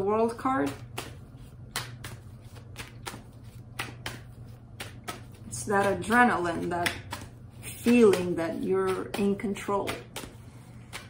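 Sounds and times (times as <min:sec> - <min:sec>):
cards being shuffled: 0:00.6 - 0:11.0.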